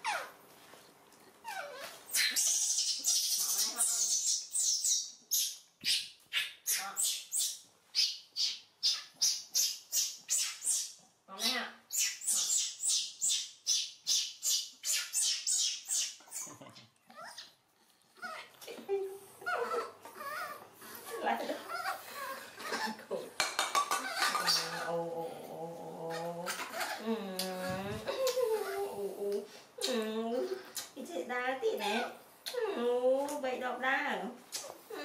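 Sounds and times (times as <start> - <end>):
baby monkey whimpering cry: 1.4 - 5.0, 19.4 - 22.9
baby monkey squealing cries: 1.4 - 16.5.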